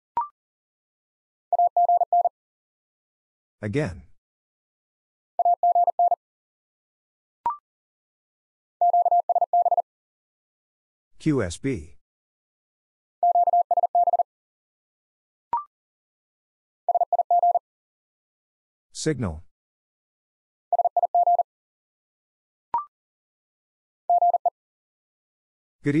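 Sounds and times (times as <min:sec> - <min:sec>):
morse code beeps: 0:01.6 - 0:02.3, 0:05.4 - 0:06.2, 0:08.8 - 0:09.8, 0:13.2 - 0:14.2, 0:16.9 - 0:17.6, 0:20.7 - 0:21.4, 0:24.1 - 0:24.5
morse code tone: 0:08.8 - 0:09.8, 0:24.1 - 0:24.5.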